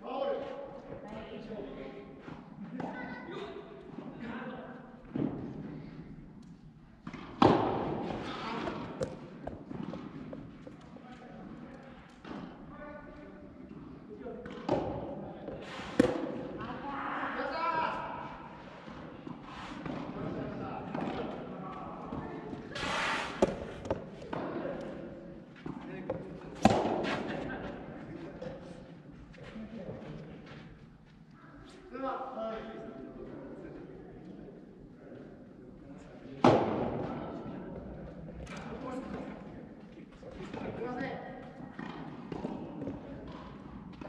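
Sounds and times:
rackets hitting tennis ball: 0:06.4 - 0:12.7, 0:13.7 - 0:16.8, 0:18.5 - 0:27.9, 0:36.4 - 0:39.5, 0:41.4 - 0:44.0
players calling and shouting: 0:12.0 - 0:29.3.

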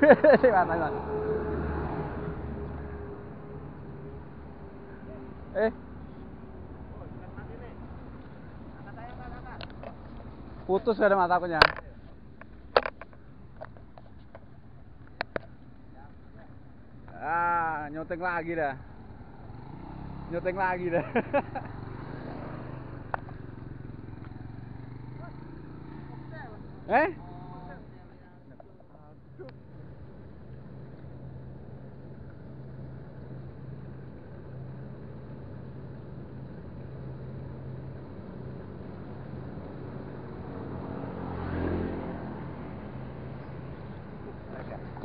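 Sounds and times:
vehicle passing: 0:00.0 - 0:11.8, 0:17.2 - 0:45.0
motor traffic hum: 0:00.0 - 0:45.0.

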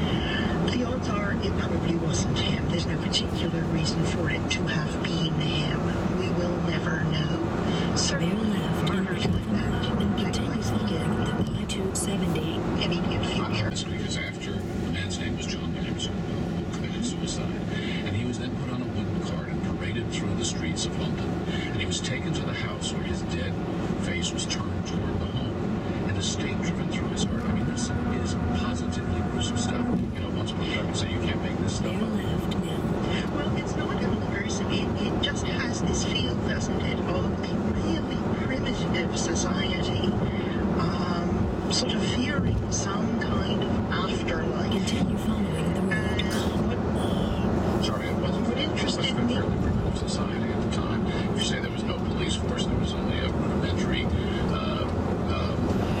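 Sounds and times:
road and tyre noise in car cabin: 0:00.0 - 0:56.0.

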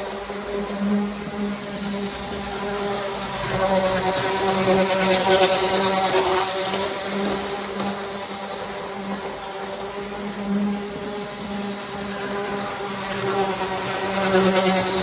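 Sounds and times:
model train running on track: 0:00.0 - 0:15.0.

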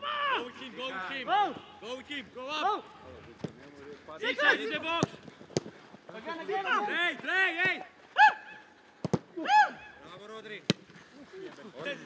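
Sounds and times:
footballs being kicked: 0:04.8 - 0:06.2, 0:09.0 - 0:09.4.

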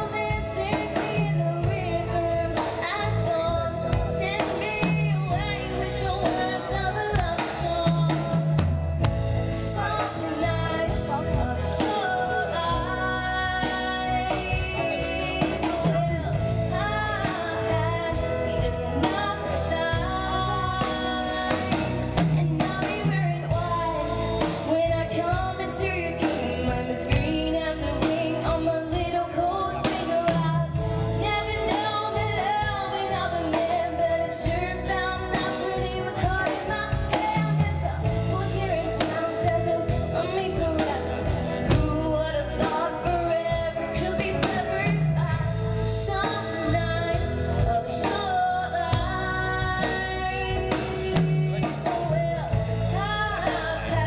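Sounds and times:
live band playing: 0:00.0 - 0:54.0
steady drum beat: 0:00.0 - 0:54.0
woman singing into a microphone: 0:00.0 - 0:54.0.

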